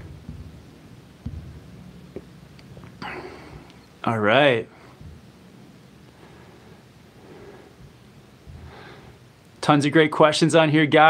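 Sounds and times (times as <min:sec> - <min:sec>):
low steady hum: 0:00.0 - 0:11.0
man breathing in: 0:06.1 - 0:09.3.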